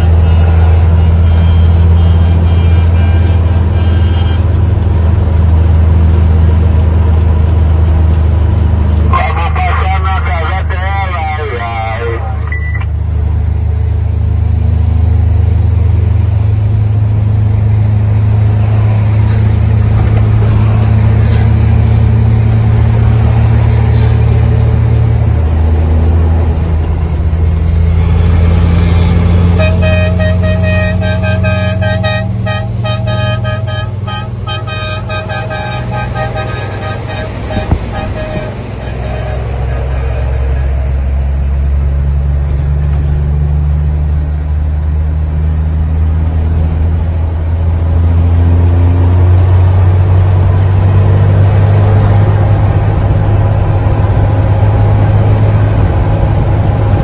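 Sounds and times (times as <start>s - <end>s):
truck engine droning: 0.0s - 57.0s
pulsing pitched tone: 27.8s - 41.4s.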